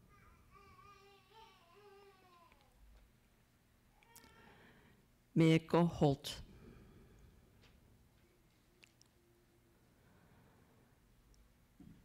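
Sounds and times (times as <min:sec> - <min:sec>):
faint high voice-like cry: 0:00.0 - 0:02.8.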